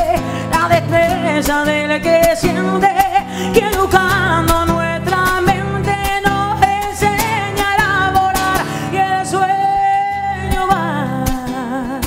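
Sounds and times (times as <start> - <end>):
strummed acoustic guitar: 0.0 - 12.0
woman singing with vibrato: 0.0 - 12.0.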